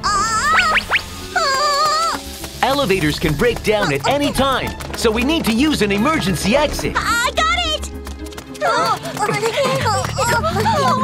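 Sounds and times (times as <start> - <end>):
soft background music: 0.0 - 11.0
person speaking: 2.6 - 7.9.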